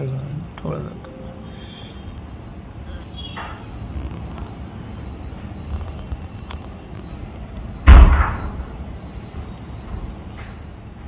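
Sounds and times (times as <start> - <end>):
loud sudden thump: 7.9 - 8.5.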